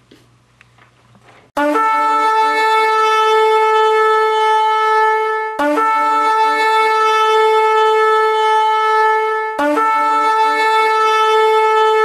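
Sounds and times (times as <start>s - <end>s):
horn blowing a long note: 1.6s - 12.0s.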